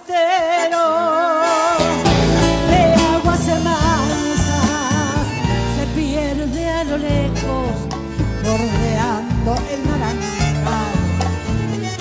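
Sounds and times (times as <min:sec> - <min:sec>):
band playing: 0:00.4 - 0:12.0
accordion melody: 0:00.6 - 0:12.0.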